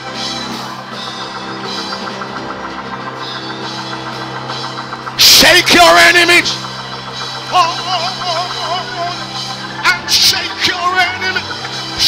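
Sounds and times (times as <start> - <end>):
drum kit beat: 0.0 - 12.0
live church band music: 0.0 - 12.0.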